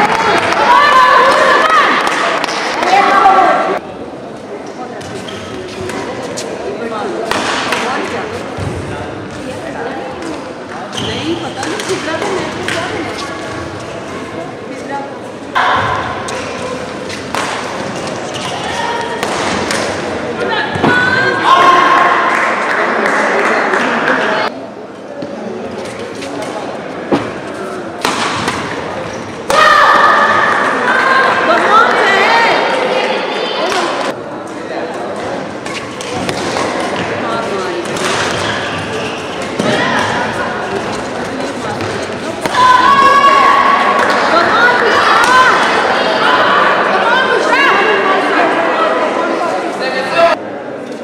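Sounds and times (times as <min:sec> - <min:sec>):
voices: 0:00.0 - 0:50.4.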